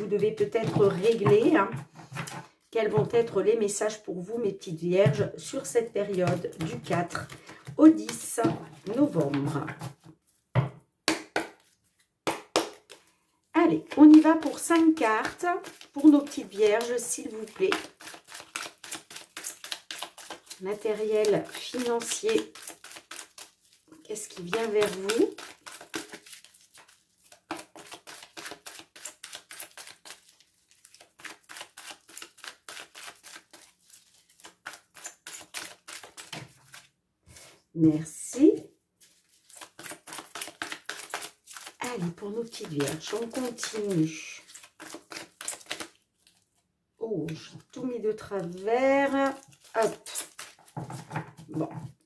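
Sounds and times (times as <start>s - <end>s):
cards being shuffled by hand: 13.8s - 37.5s, 39.0s - 46.4s, 47.3s - 52.0s.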